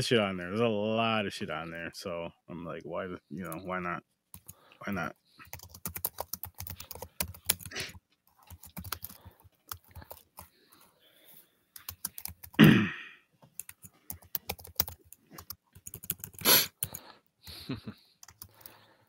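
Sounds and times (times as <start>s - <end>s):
keyboard typing: 4.3s - 4.6s, 5.4s - 10.9s, 11.7s - 12.6s, 13.4s - 17.1s, 18.2s - 18.8s
short vocal sound: 12.6s - 13.2s.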